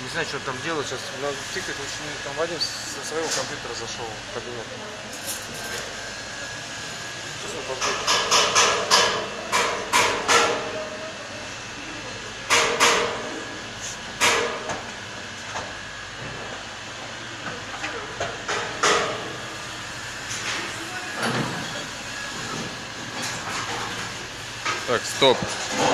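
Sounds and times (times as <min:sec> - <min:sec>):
machinery hum: 0:00.0 - 0:25.9.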